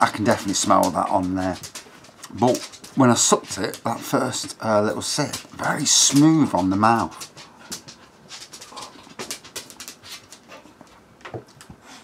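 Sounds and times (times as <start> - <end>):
dog claws clicking and tapping: 0.0 - 11.8.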